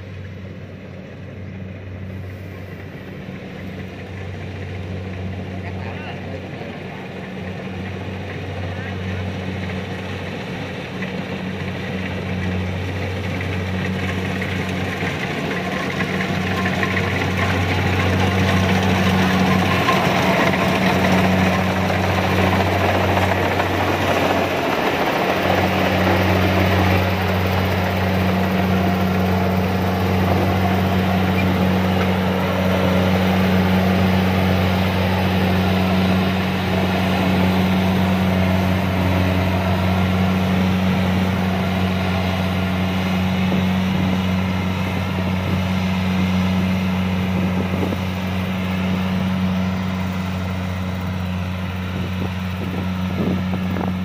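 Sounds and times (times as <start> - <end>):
diesel engine drone: 0.0 - 54.0
cutting and threshing machinery: 2.5 - 54.0.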